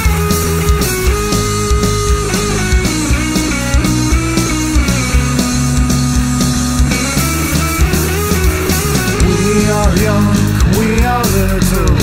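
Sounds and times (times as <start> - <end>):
drum kit: 0.0 - 12.0
pitch-shifted bass guitar: 0.0 - 12.0.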